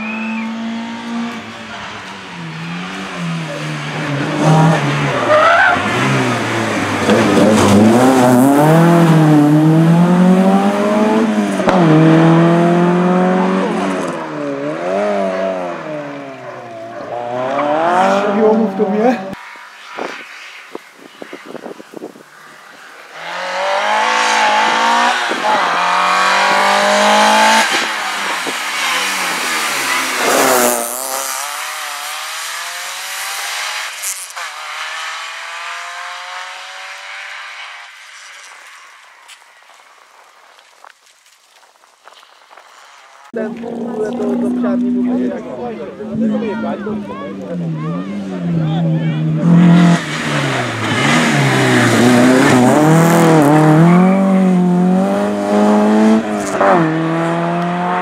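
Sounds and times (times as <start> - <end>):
rally car engine revving: 0.0 - 19.4, 23.0 - 38.5, 43.2 - 58.0
sharp crackles: 37.9 - 45.0.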